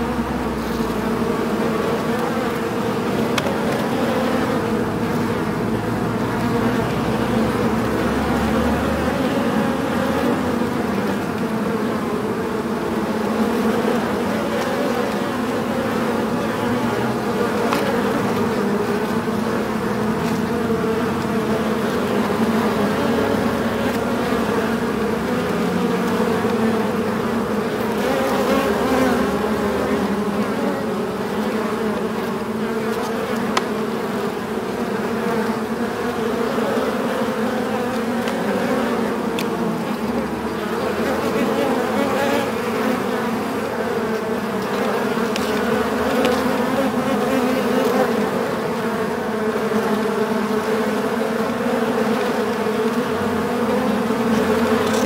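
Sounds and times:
bees buzzing in a hive: 0:00.0 - 0:55.0.

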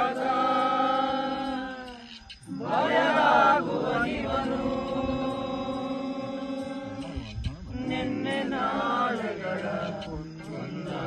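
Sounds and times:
chanted devotional song: 0:00.0 - 0:11.0.

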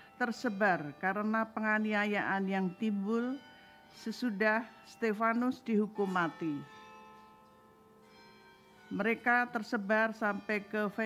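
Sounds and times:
faint steady ringing tones: 0:00.0 - 0:11.0
woman reading aloud: 0:00.2 - 0:03.4, 0:04.0 - 0:06.7, 0:09.0 - 0:11.0.

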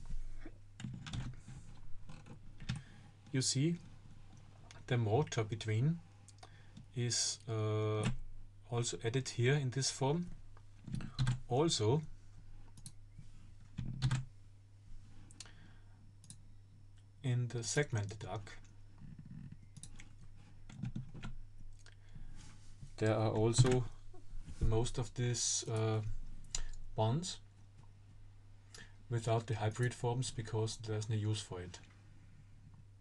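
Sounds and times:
steady low hum: 0:00.0 - 0:33.0
keyboard and mouse clicks: 0:10.9 - 0:11.4, 0:12.7 - 0:13.0, 0:13.8 - 0:14.3, 0:19.6 - 0:21.9
computer mouse and keyboard clicks: 0:19.2 - 0:21.4.

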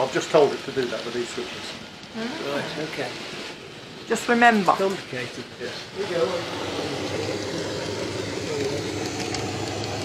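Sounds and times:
model train wheels on rails: 0:00.0 - 0:02.2, 0:02.8 - 0:10.0
small electric motor: 0:00.0 - 0:10.0.

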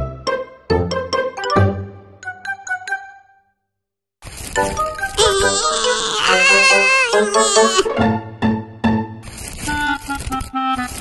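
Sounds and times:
background music: 0:00.0 - 0:03.4, 0:04.7 - 0:09.3
cartoon character whimpering: 0:05.2 - 0:07.9.

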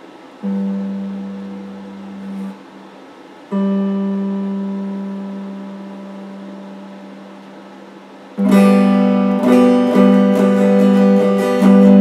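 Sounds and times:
electric guitar notes ringing: 0:00.0 - 0:12.0.

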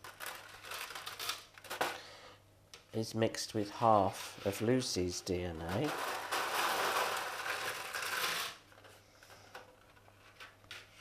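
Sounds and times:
candies rattling on plastic plates: 0:00.0 - 0:02.0, 0:05.6 - 0:08.6.

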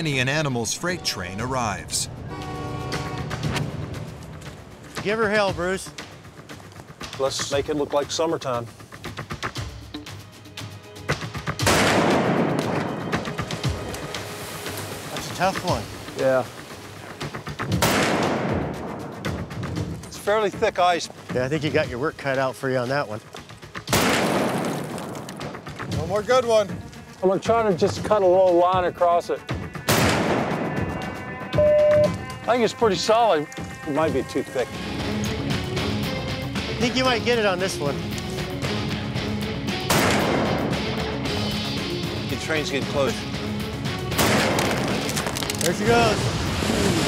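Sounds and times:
dramatic music with drum hits: 0:02.0 - 0:47.0
rifle shot echoing: 0:11.6 - 0:12.9, 0:17.8 - 0:18.7, 0:23.9 - 0:25.2, 0:39.9 - 0:40.7, 0:44.2 - 0:44.9.

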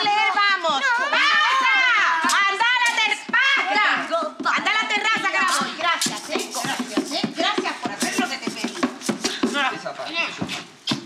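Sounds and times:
group singing and shouting: 0:00.0 - 0:11.0
hand drum beats: 0:00.0 - 0:11.0
people clapping: 0:00.0 - 0:11.0.

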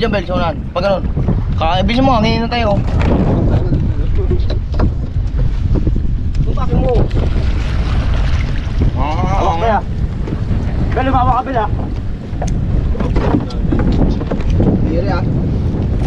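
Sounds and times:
boat knocks and water splashes: 0:00.0 - 0:16.0
wind buffeting microphone: 0:00.0 - 0:16.0.

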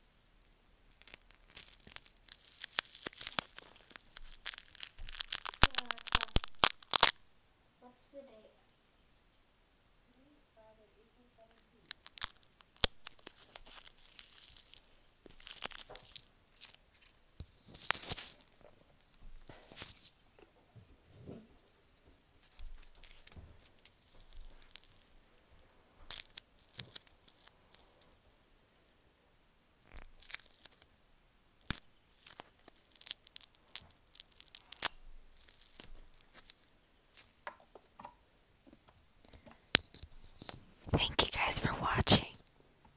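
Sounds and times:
packing peanuts crushed by hand: 0:00.0 - 0:07.2, 0:11.7 - 0:19.9, 0:22.8 - 0:25.2, 0:26.0 - 0:27.9, 0:29.8 - 0:30.9, 0:31.6 - 0:37.8
fingers rustling earphone cord: 0:01.0 - 0:07.1.

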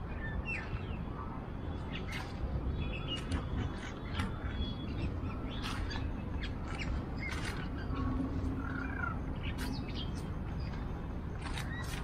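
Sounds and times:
birds calling: 0:00.0 - 0:12.0
low background noise: 0:00.0 - 0:12.0.

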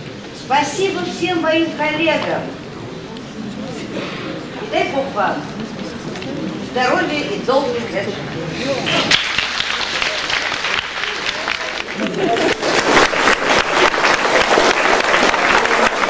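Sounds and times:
voices: 0:00.0 - 0:12.6
audience applauding: 0:08.9 - 0:16.0.

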